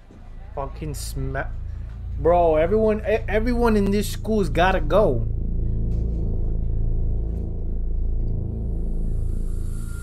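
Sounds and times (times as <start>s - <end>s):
low rumbling drone: 0.3s - 10.0s.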